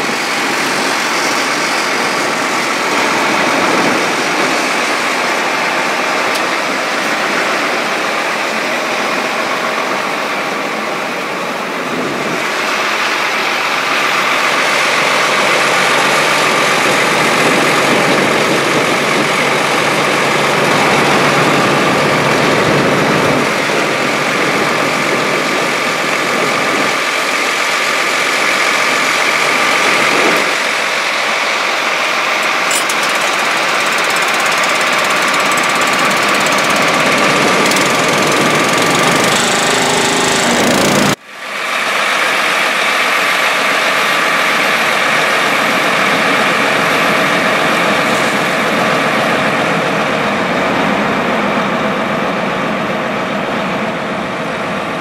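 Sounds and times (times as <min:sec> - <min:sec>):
machine engine running: 0:00.0 - 0:41.2.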